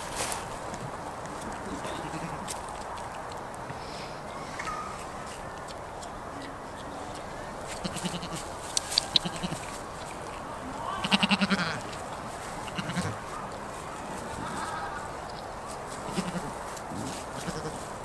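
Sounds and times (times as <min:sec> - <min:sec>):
goats tearing at grass: 0:00.0 - 0:18.0
goat bleating: 0:01.7 - 0:02.5, 0:07.7 - 0:09.8, 0:10.8 - 0:12.0, 0:12.6 - 0:13.2, 0:16.1 - 0:17.9.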